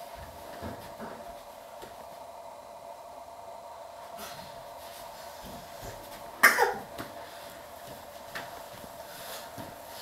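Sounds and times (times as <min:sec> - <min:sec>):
faint steady hum: 0:00.0 - 0:10.0
person coughing: 0:06.4 - 0:06.9.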